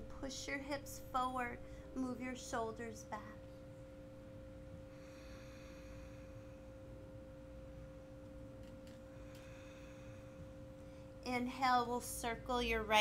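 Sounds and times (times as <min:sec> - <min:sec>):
faint low drone: 0:00.0 - 0:13.0.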